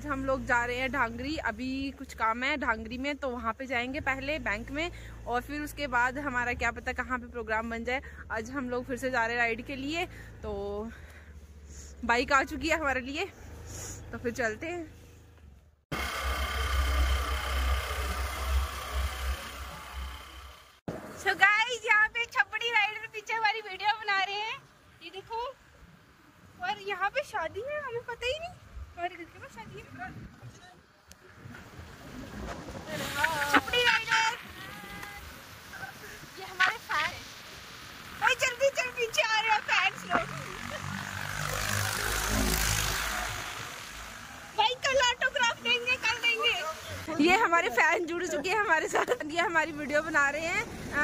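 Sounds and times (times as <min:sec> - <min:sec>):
tractor engine passing: 0:00.0 - 0:21.7, 0:31.4 - 0:51.0
road noise: 0:00.0 - 0:51.0
wind: 0:00.0 - 0:51.0.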